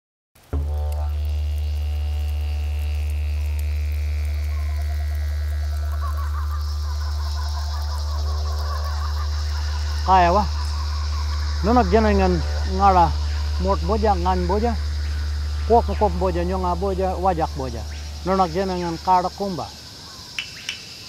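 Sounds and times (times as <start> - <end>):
didgeridoo drone: 0.4 - 20.4.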